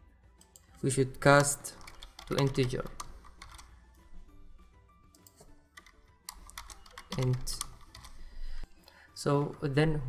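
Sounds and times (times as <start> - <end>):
typing on computer keyboard: 1.4 - 3.7, 5.2 - 8.2.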